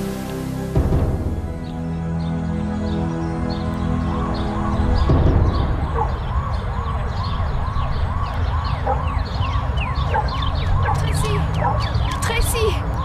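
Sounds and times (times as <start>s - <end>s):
emergency siren yelping: 3.4s - 12.2s.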